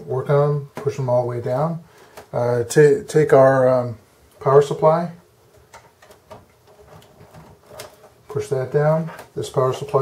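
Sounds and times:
wires rustling: 3.3s - 10.0s.

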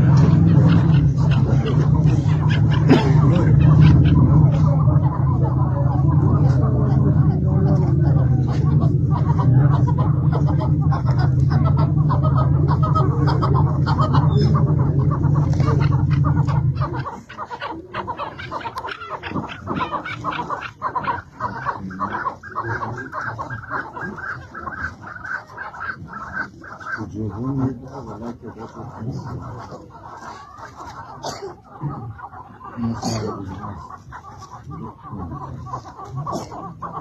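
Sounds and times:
loud low hum: 0.0s - 29.9s.

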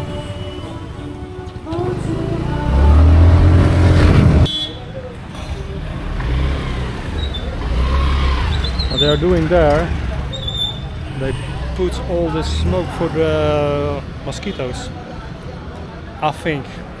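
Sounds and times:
scooter moving off: 1.5s - 4.5s, 5.2s - 13.6s
car driving past: 1.8s - 4.5s, 5.4s - 13.9s
vehicle engine and wind rumble: 1.8s - 4.5s.

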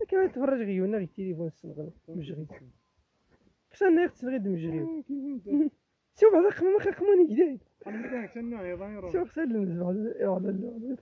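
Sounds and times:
men hooting and talking: 0.0s - 2.8s, 3.6s - 11.0s.

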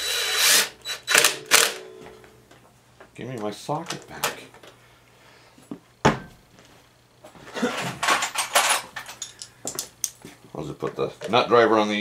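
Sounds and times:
tool set down on workbench: 5.7s - 6.4s, 7.5s - 9.2s
tools rattling and clinking: 7.5s - 10.2s.

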